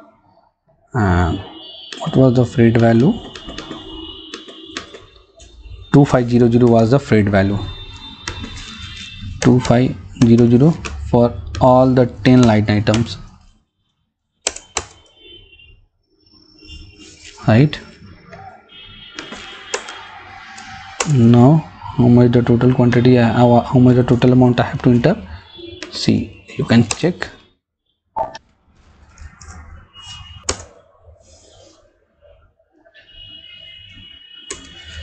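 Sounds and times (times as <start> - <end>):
keyboard key clicks: 3.2 - 5.1, 14.5 - 15.0
computer keystroke click: 14.5 - 15.0.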